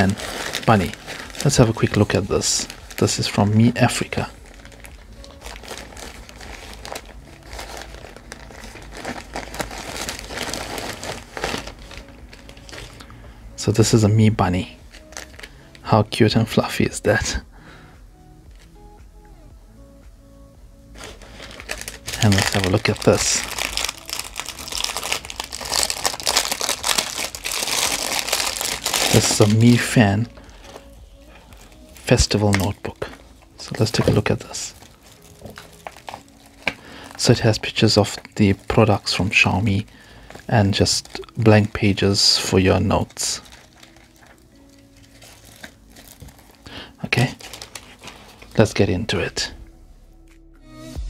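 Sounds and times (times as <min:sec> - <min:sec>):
plastic bag crinkling: 0:00.0 - 0:15.9, 0:21.0 - 0:48.8.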